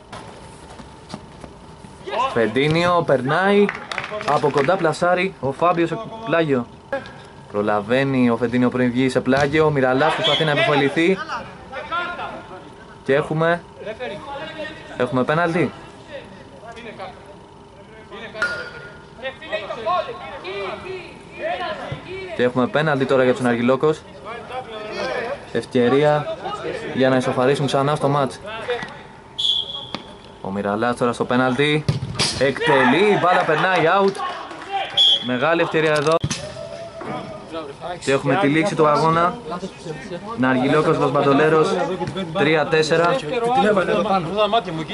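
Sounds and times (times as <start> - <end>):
players calling and shouting: 0.8 - 44.9.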